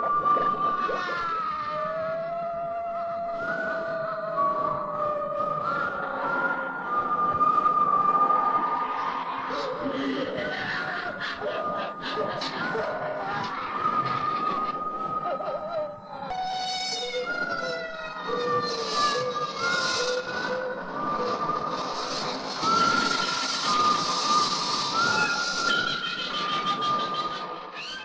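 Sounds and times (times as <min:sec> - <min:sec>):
wolves howling: 0:00.0 - 0:21.6.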